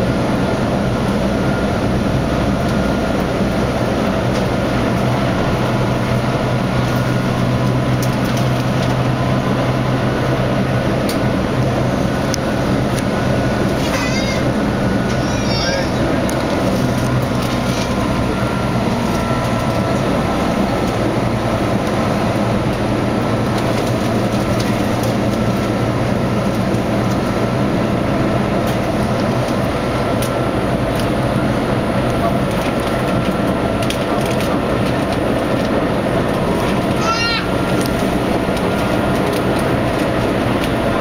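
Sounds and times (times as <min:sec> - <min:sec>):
electric train rumbling: 0:00.0 - 0:41.0
wheels clicking on rails: 0:02.6 - 0:41.0.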